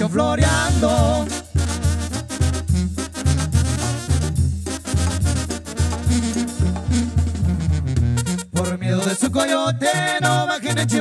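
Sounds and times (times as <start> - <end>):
tuba bass line: 0.0 - 11.0
tambora drum: 0.5 - 8.3.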